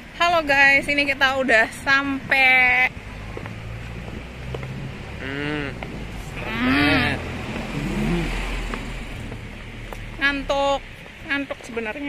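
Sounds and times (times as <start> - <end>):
low rumble of road traffic: 0.0 - 12.0
woman humming: 5.2 - 5.8, 6.4 - 8.6.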